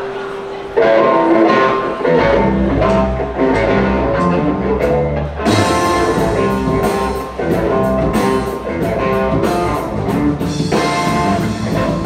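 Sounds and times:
electric guitar through amplifier: 0:00.0 - 0:12.0
drum kit: 0:01.5 - 0:12.0.

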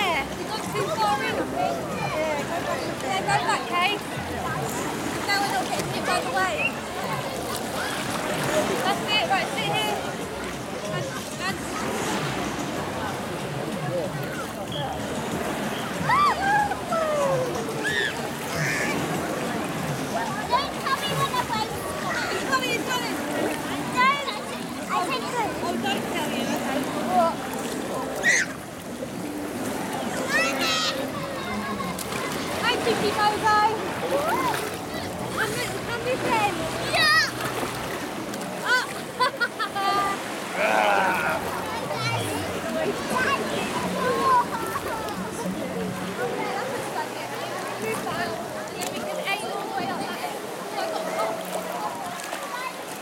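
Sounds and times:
water sloshing and splashing: 0:00.0 - 0:53.0
children calling out: 0:16.0 - 0:19.2, 0:28.2 - 0:28.6, 0:38.6 - 0:42.5
children shouting and squealing: 0:16.0 - 0:19.2, 0:28.1 - 0:28.6, 0:30.2 - 0:32.4, 0:36.7 - 0:37.6.

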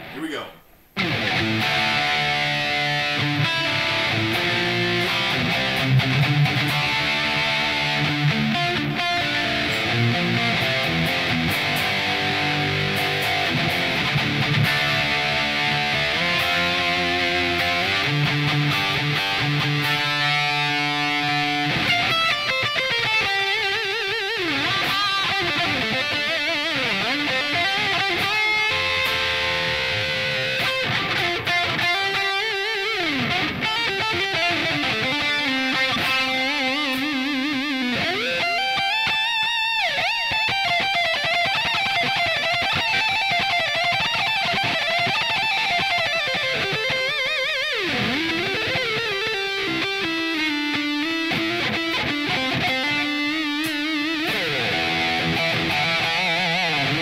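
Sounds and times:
electric guitar playing: 0:01.0 - 0:57.0.

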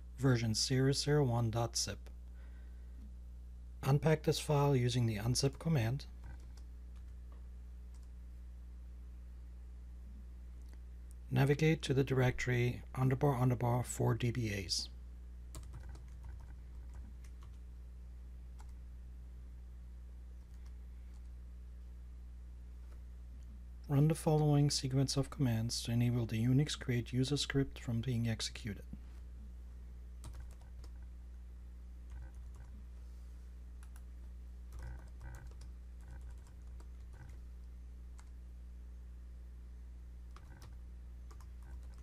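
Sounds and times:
low electrical hum: 0:00.0 - 0:42.0
keyboard typing: 0:06.2 - 0:07.2, 0:07.9 - 0:08.1, 0:15.5 - 0:17.6, 0:30.2 - 0:31.0, 0:32.1 - 0:32.8, 0:33.8 - 0:34.0, 0:34.7 - 0:37.4, 0:40.3 - 0:42.0.

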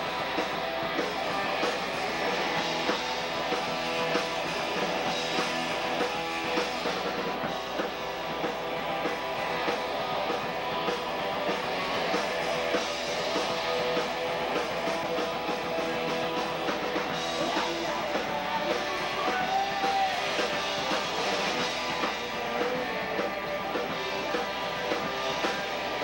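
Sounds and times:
drum kit: 0:00.0 - 0:26.0
strummed electric guitars: 0:00.0 - 0:26.0.

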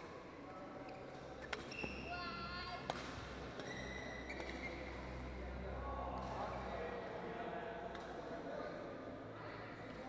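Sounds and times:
shoes squeaking on court: 0:00.9 - 0:02.1, 0:02.9 - 0:05.0
racket hitting shuttlecock: 0:02.8 - 0:03.7.

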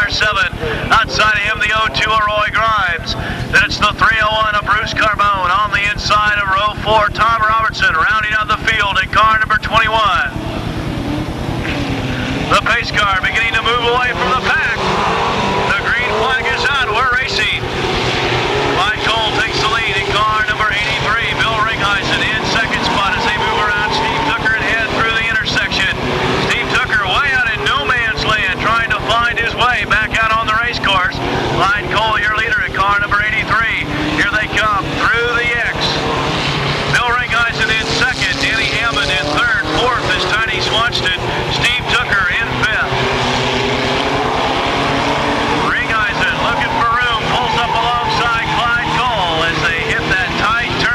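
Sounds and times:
race car engines revving: 0:00.0 - 0:50.9.

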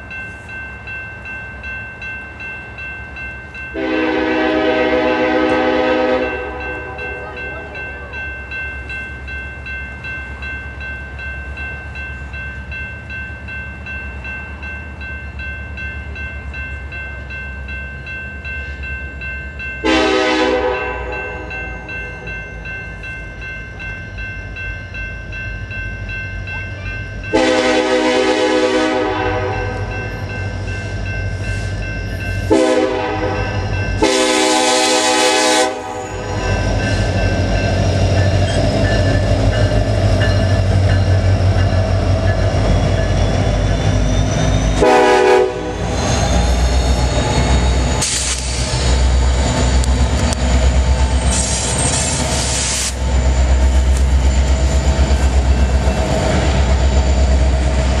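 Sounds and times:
crossing bell ringing: 0:00.0 - 0:58.0
diesel locomotive engines: 0:00.0 - 0:58.0
train wheels on rails: 0:00.0 - 0:58.0
locomotive air horn blasts: 0:03.8 - 0:07.7, 0:19.8 - 0:21.5, 0:27.3 - 0:29.8, 0:32.5 - 0:36.4, 0:44.8 - 0:45.8.

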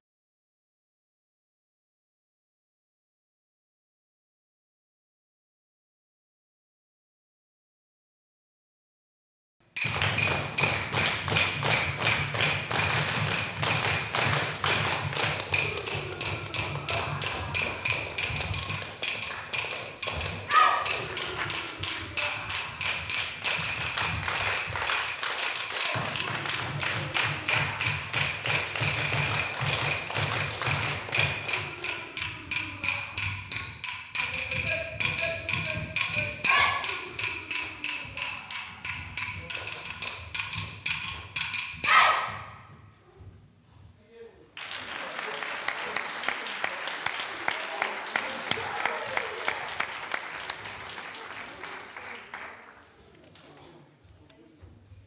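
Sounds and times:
clapsticks tapping: 0:09.8 - 0:42.0.

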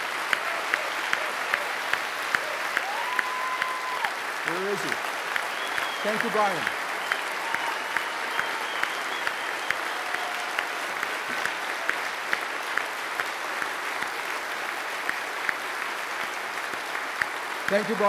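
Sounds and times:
audience applauding: 0:00.0 - 0:18.0
close hand claps: 0:00.0 - 0:18.0.

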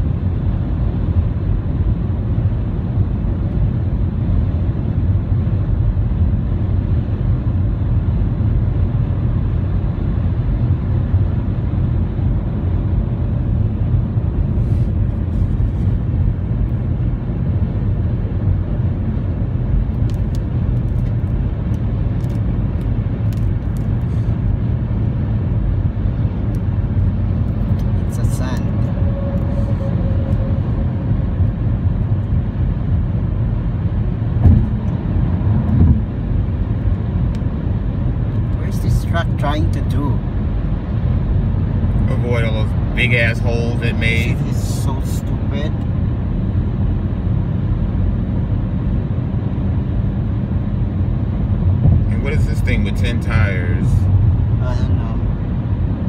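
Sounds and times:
car road and engine rumble: 0:00.0 - 0:56.0
short thumps: 0:34.4 - 0:34.8.

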